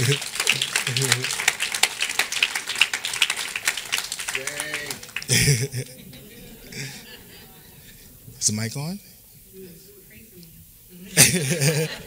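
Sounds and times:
crowd clapping: 0.0 - 6.0.

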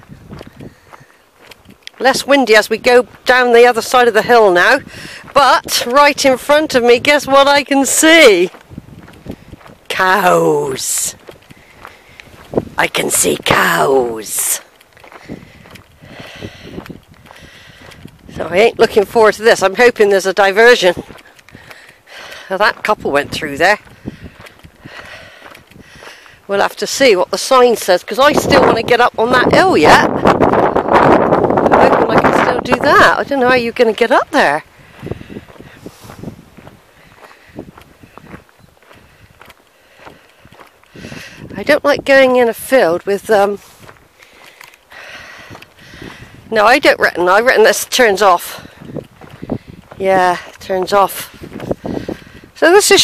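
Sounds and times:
footsteps crunching on gravel: 0.0 - 53.0.

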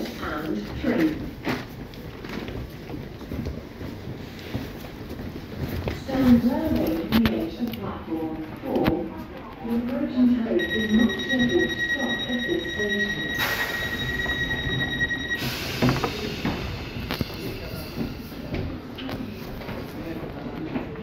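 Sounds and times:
train door warning beep: 10.6 - 17.3
air doors hissing: 13.4 - 14.3, 15.3 - 18.5.

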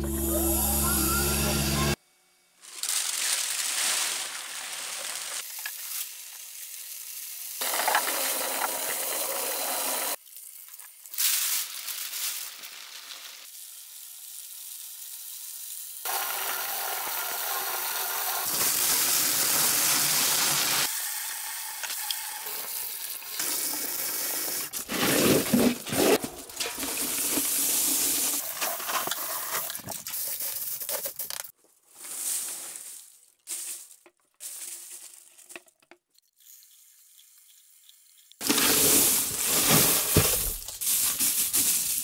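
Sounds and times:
metal pieces rattling in a bin: 2.6 - 5.9, 38.4 - 42.0
shredder crushing metal cans: 7.6 - 10.2, 38.4 - 41.1.

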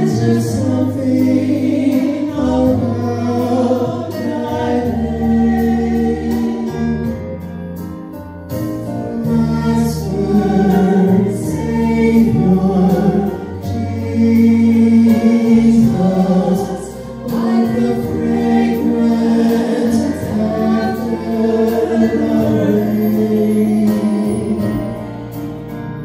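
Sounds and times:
man and woman singing: 0.0 - 6.9, 9.2 - 24.9
instrumental accompaniment with bass: 0.0 - 26.0.

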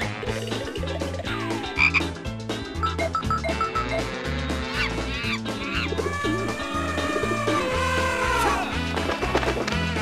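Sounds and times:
cartoon theme music with bass beat: 0.0 - 10.0.

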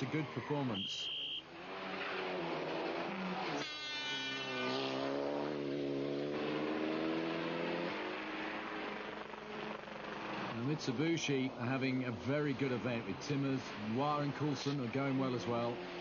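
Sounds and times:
rally car engine revving: 1.5 - 10.8.

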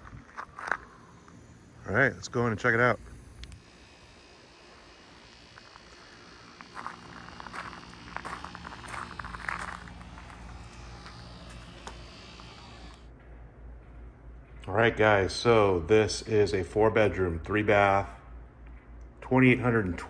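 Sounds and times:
low microphone rumble: 5.5 - 18.5
footsteps on concrete: 5.6 - 13.0.

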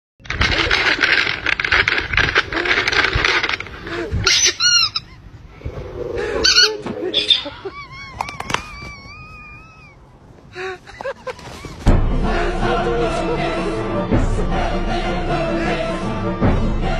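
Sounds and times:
plastic snack packet crinkling: 0.2 - 3.8
high squeaky pitched sounds: 4.2 - 10.2.

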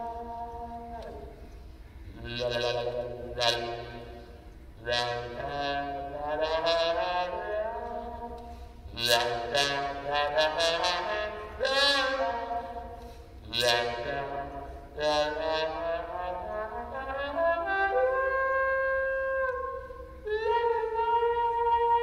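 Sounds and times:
muted trombone: 0.0 - 22.0.

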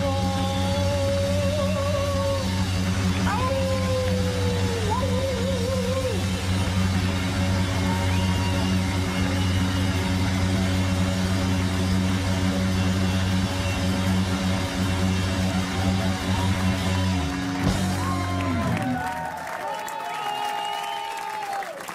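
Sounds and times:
live rock band holding a chord: 0.0 - 19.6
final band hit: 6.4 - 19.4.

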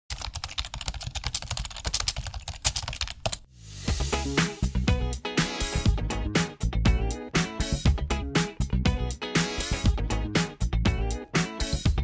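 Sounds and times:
rapid irregular keyboard clicking: 0.1 - 3.4
music: 3.5 - 12.0.

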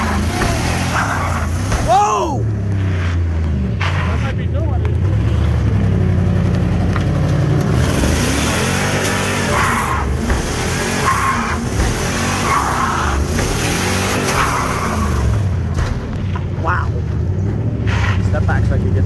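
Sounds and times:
tires squealing: 0.0 - 5.7, 7.6 - 19.0
truck engine running hard: 0.0 - 19.0.

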